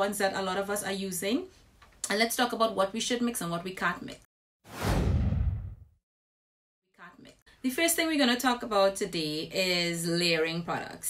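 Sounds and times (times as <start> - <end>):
whoosh sound effect: 4.7 - 5.9.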